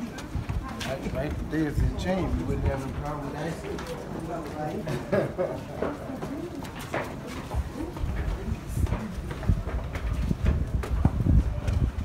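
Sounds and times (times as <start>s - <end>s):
footsteps on stone stairs: 0.0s - 12.0s
dull low thumps: 8.0s - 12.0s.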